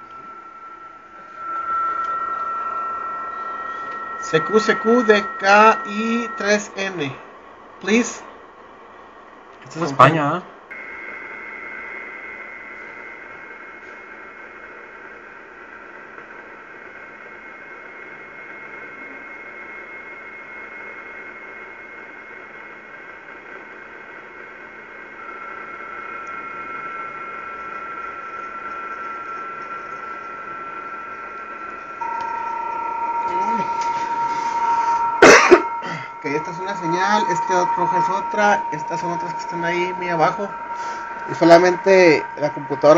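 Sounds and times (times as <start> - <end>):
digital data tones: 0.0 - 8.2, 25.2 - 42.9.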